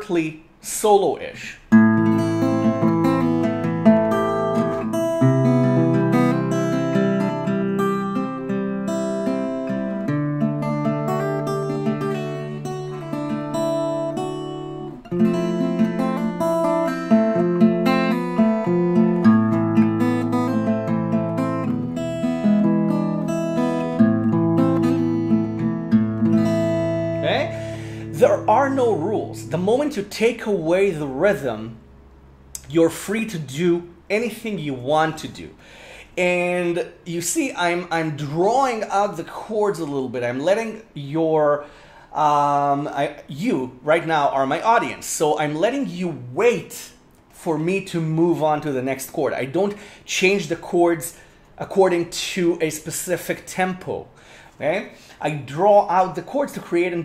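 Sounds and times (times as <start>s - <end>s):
fingerstyle acoustic guitar: 1.7s - 30.4s.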